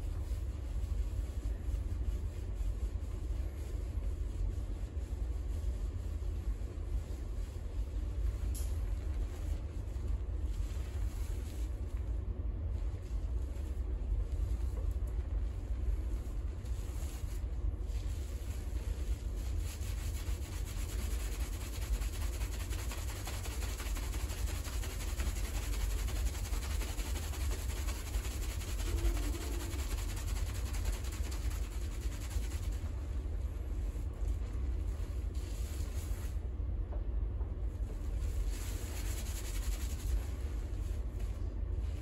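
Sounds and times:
steady low rumble: 0.0s - 42.0s
fingers scrubbing lathered hair: 18.0s - 33.1s, 38.2s - 40.8s.

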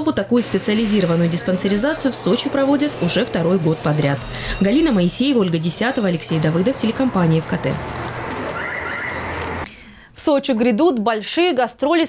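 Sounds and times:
outdoor background hum: 0.0s - 9.8s
faint high warbling call: 8.5s - 9.3s.

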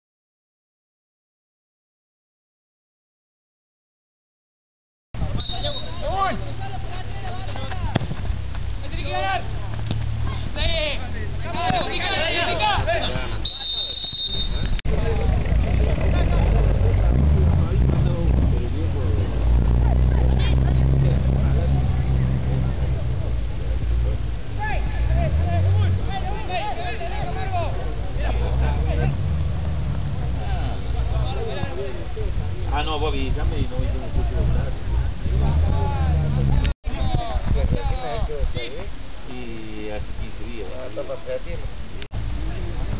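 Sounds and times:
players calling out: 8.9s - 32.2s
low rumble on microphone: 14.0s - 26.1s, 27.2s - 38.7s.

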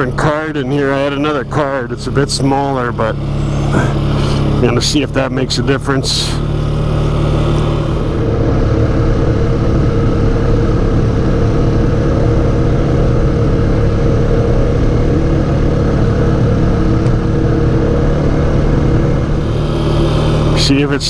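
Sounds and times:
atv engine running: 0.0s - 21.0s.

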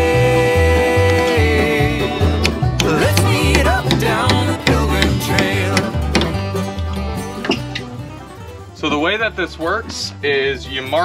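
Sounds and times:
country music with plucked strings: 0.0s - 11.0s.

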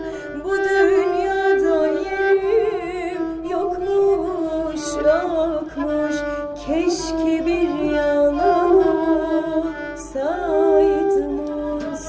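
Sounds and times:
woman singing folk song: 0.0s - 12.0s.

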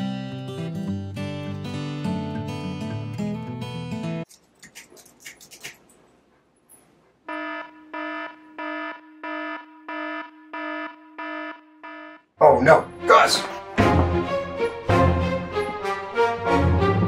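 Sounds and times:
guitar music: 0.0s - 4.2s, 12.7s - 17.0s
electronic alarm beeping: 7.3s - 13.0s.

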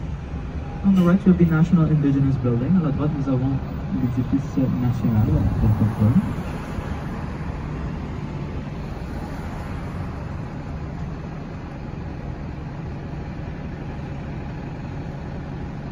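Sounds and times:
traffic rumble: 0.0s - 15.9s.

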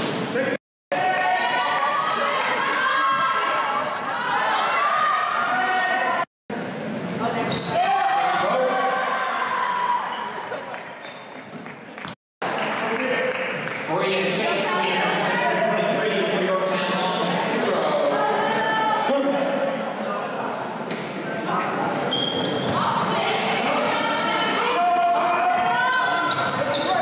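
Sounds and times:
crowd and player voices shouting: 0.9s - 6.3s, 7.7s - 10.4s, 22.7s - 27.0s
shoes squeaking on court: 2.9s - 7.8s, 10.0s - 12.9s, 22.1s - 23.1s, 25.8s - 27.0s.

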